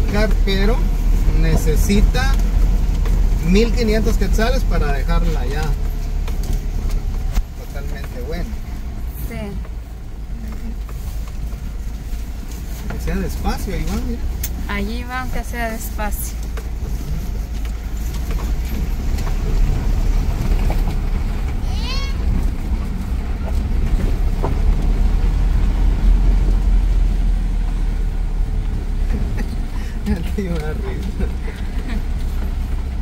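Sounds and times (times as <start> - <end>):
car cabin rumble: 0.0 - 33.0.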